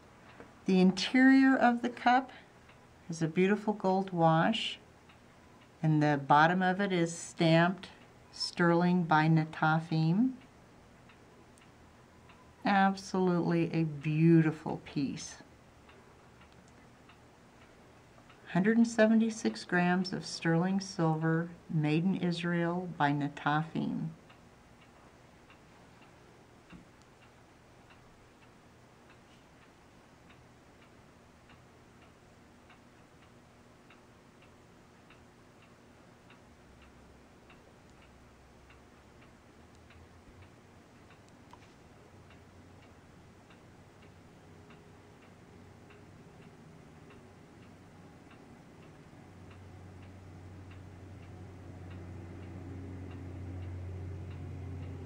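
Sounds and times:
low hum: 0:00.0 - 0:55.0
clock ticking: 0:22.1 - 0:55.0.

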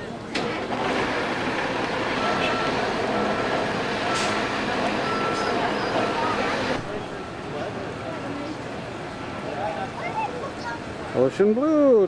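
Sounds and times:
loud street noise: 0:00.0 - 0:12.0
back-up alarm beeping: 0:01.9 - 0:07.4.

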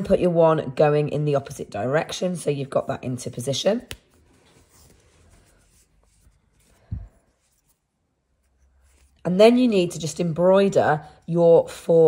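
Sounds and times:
crochet hook rubbing yarn: 0:05.5 - 0:11.5.

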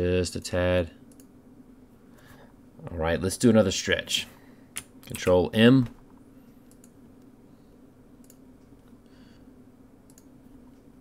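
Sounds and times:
low steady hum: 0:00.0 - 0:11.0
computer mouse clicks: 0:01.1 - 0:01.3, 0:06.1 - 0:07.3, 0:08.2 - 0:09.0, 0:10.0 - 0:10.9.

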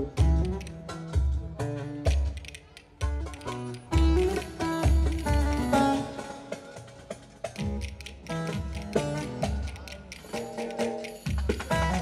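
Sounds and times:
low drum beat: 0:00.0 - 0:05.9, 0:07.5 - 0:10.2
saz folk tune: 0:00.0 - 0:12.0.

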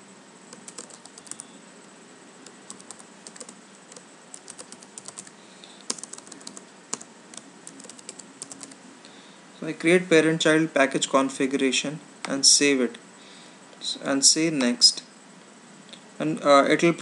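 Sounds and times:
faint steady hiss: 0:00.0 - 0:17.0
computer keyboard typing: 0:00.5 - 0:01.5, 0:02.4 - 0:05.3, 0:05.9 - 0:08.8.

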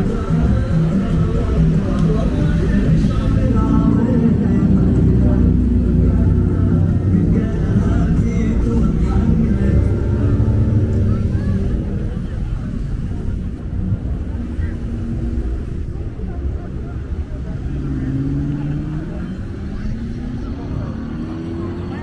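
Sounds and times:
engine revving: 0:00.0 - 0:12.6, 0:17.0 - 0:22.0
car engines rumbling: 0:00.0 - 0:22.0
crowd voices: 0:00.0 - 0:22.0.

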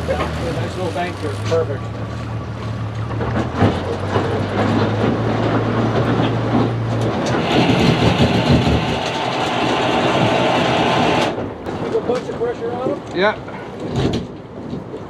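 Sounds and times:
outboard motor humming: 0:00.0 - 0:11.6
hull grinding on riverbank: 0:00.0 - 0:15.0.

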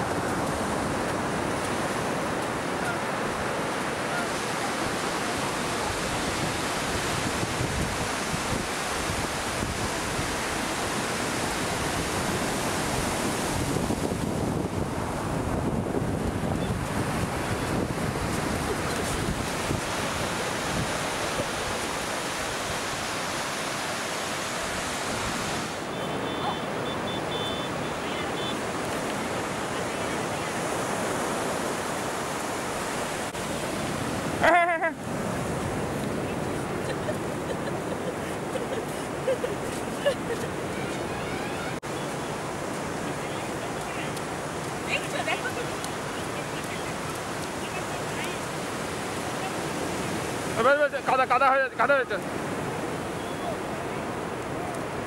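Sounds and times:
ocean waves breaking on beach: 0:00.0 - 0:55.0
wind on microphone: 0:04.7 - 0:23.5.

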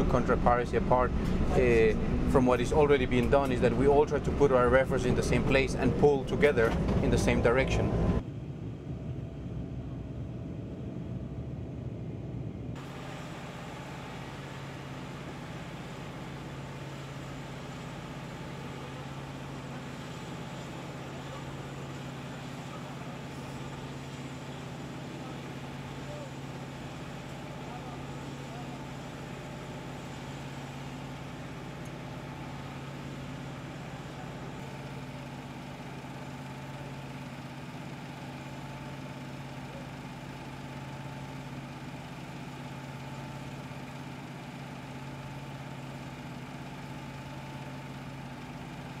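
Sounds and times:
machinery engine droning: 0:00.0 - 0:49.0.

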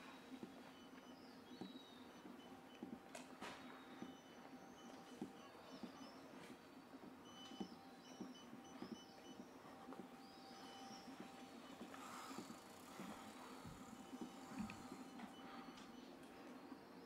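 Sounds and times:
soft footsteps on cobblestones: 0:00.0 - 0:17.0
faint bird chirps: 0:00.1 - 0:02.9, 0:03.6 - 0:17.0.

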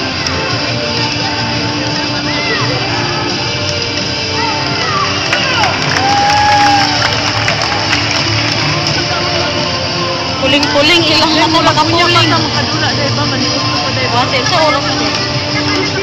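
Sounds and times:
crowd chatter: 0:00.0 - 0:16.0
music over loudspeakers: 0:00.0 - 0:16.0
shrill shouting and cheering: 0:04.2 - 0:07.9.

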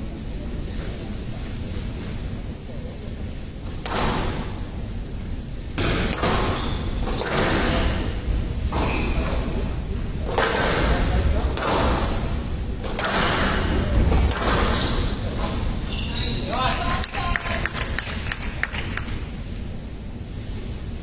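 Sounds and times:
squash ball thudding against walls: 0:03.8 - 0:04.4, 0:05.8 - 0:09.4, 0:10.2 - 0:12.1, 0:12.8 - 0:15.6.

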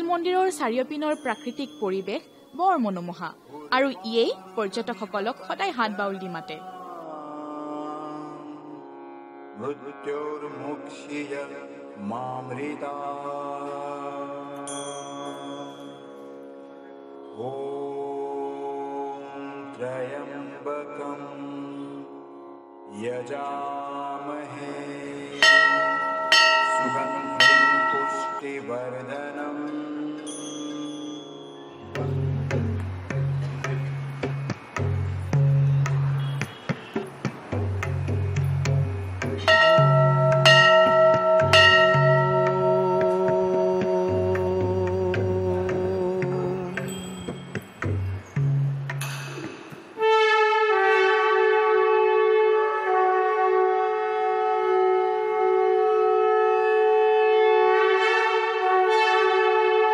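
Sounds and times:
devotional music with held notes: 0:00.0 - 0:59.9
temple bell struck: 0:25.4 - 0:28.6, 0:39.5 - 0:44.4.

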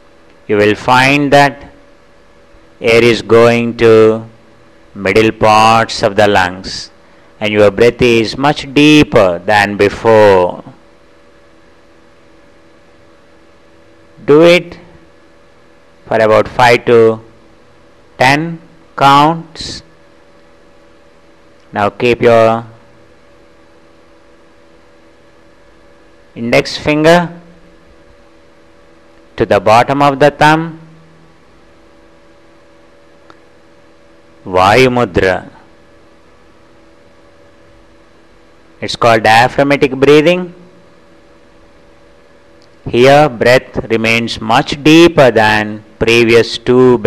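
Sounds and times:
low even hum: 0:00.0 - 0:47.0.

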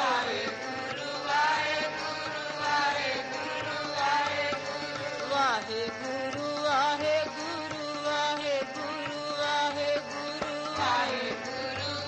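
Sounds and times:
devotional chanting: 0:00.0 - 0:12.0.

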